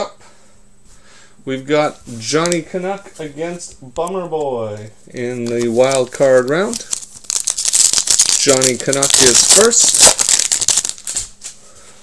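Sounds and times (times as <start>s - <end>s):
foil wrapper crinkling: 5.2s - 11.6s.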